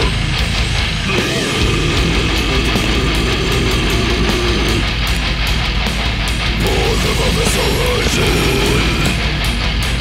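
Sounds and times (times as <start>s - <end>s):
death metal music: 0.0s - 10.0s
down-tuned electric guitars riffing: 0.0s - 10.0s.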